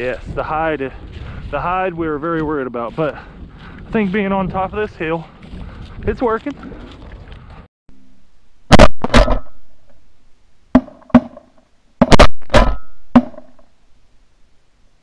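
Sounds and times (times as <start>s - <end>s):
shotgun blasts: 8.7s - 9.6s, 10.8s - 13.6s.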